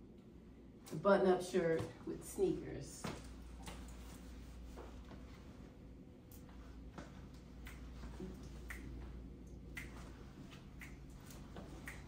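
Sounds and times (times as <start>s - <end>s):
finger snapping: 7.6s - 12.0s.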